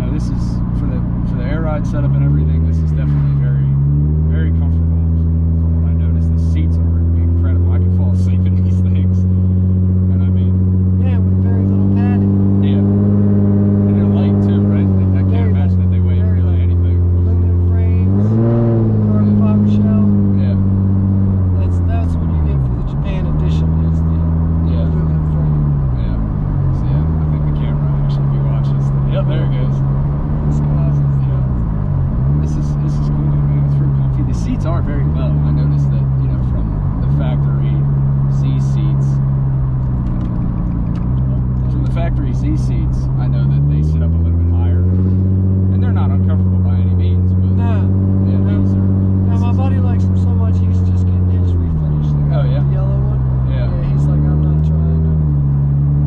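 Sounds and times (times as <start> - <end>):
car engine from inside cabin: 0.0 - 56.0.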